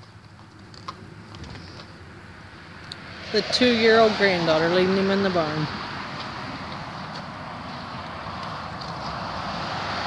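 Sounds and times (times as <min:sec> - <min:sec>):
outdoor rushing noise: 0:00.0 - 0:10.0.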